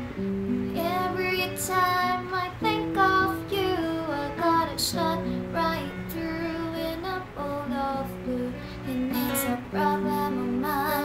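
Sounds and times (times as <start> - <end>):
acoustic guitar chords: 0.0 - 11.0
woman singing: 0.7 - 11.0.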